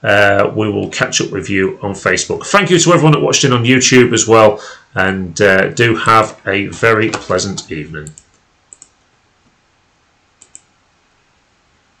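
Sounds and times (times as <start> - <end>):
computer mouse double-clicks: 8.0 - 9.0, 10.4 - 10.7.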